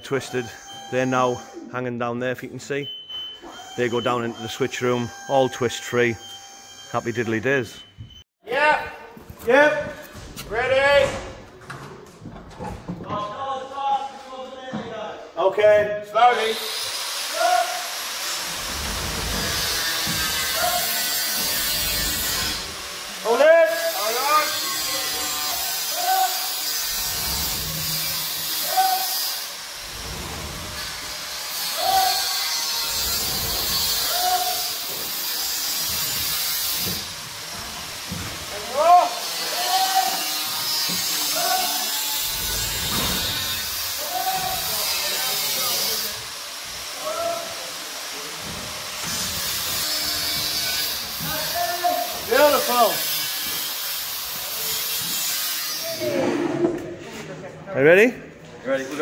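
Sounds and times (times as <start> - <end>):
cable scraping on steel ladder: 18.3 - 22.8, 23.8 - 46.2.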